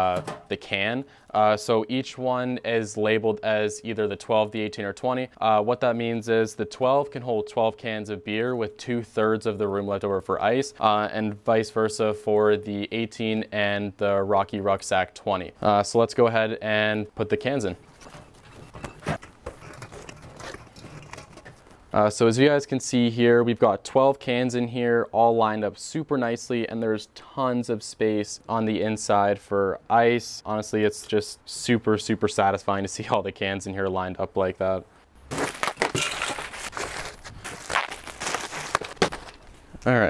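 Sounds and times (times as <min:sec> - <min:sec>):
ice cubes clattering into cooler: 0:35.3 - 0:39.4.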